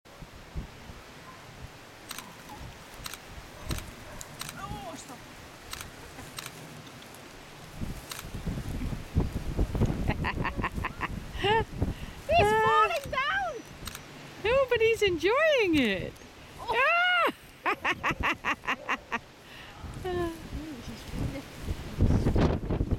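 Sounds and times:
rustling and handling: 2.1s - 9.0s
woman laughing: 10.0s - 11.8s, 16.7s - 19.3s, 20.0s - 20.7s.

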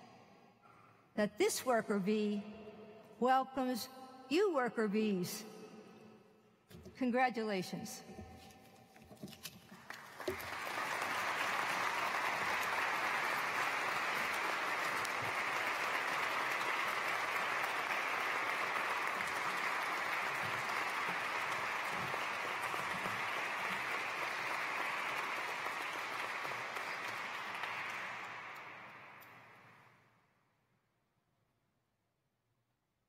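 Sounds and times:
audience applauding: 9.8s - 29.5s.

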